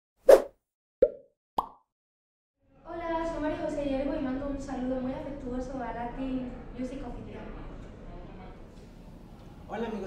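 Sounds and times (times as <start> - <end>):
pop sound effects: 0.3 - 1.9.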